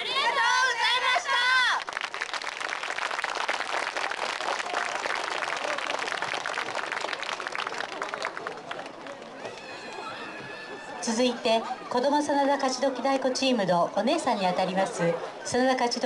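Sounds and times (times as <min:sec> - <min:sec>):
audience applauding: 0:01.8 - 0:10.3.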